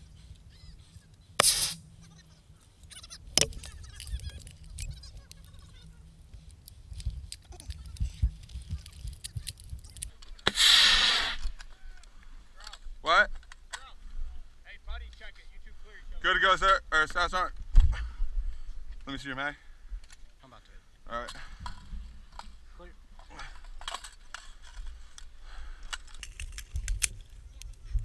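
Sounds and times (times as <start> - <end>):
sharp cracks: 1.4 - 2.0
camera handling noise: 25.9 - 27.8.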